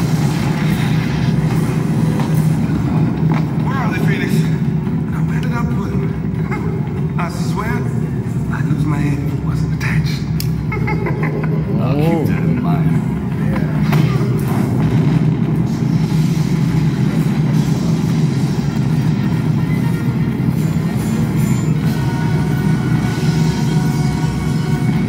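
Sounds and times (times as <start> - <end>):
steady low rumble: 0.0 - 25.0
man's voice: 3.6 - 10.4, 11.7 - 14.2.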